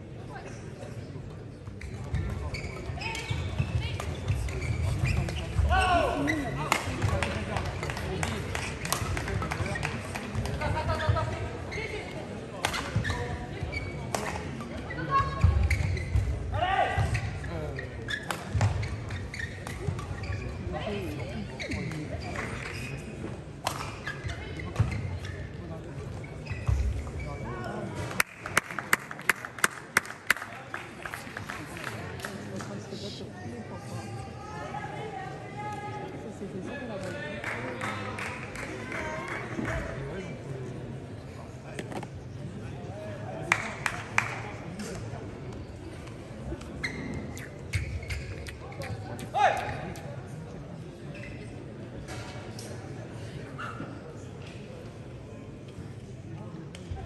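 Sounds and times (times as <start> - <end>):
voices in a hall: 0.0 - 57.0
shoe squeaks on court floor: 1.7 - 6.6, 12.8 - 16.4, 17.0 - 20.7, 21.5 - 27.6, 46.4 - 49.1, 51.1 - 51.6.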